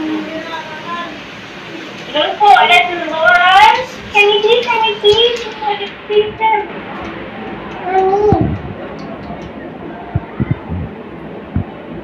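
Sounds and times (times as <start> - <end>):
soft low thumps: 10.1 - 12.0.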